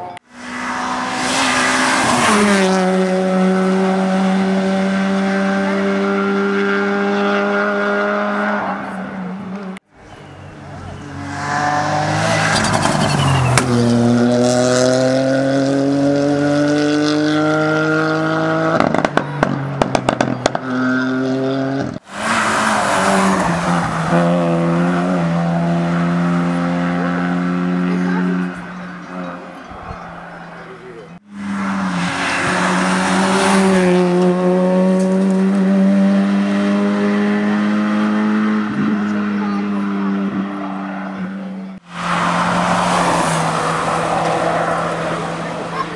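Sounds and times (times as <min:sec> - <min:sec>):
race car engines revving: 0:00.0 - 0:45.9.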